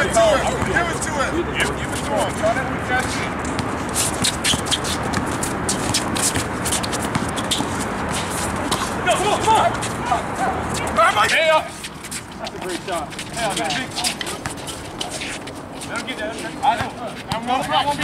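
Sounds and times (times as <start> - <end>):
men shouting: 0.0 - 1.4, 9.0 - 11.8
basketball bouncing on court: 3.3 - 8.9.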